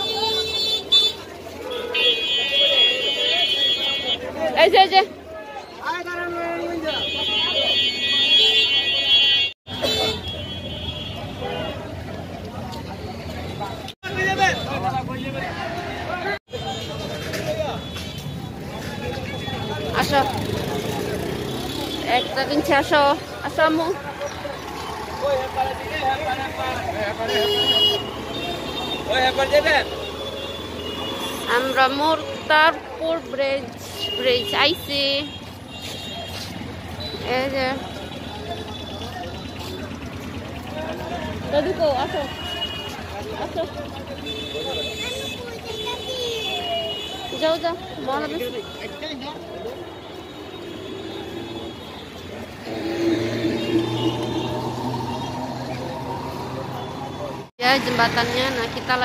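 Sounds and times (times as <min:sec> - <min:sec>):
street traffic: 0:00.0 - 0:59.0
voices: 0:00.0 - 0:59.0
high-pitched vehicle horn: 0:50.0 - 0:55.6.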